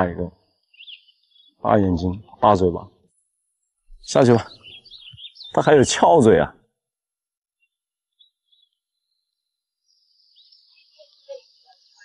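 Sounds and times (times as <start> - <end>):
high insect-like hiss: 9.9 - 12.0.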